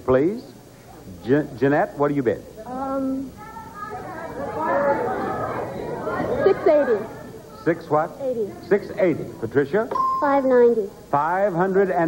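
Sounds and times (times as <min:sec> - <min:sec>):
audience shouting: 0:03.4 - 0:07.6.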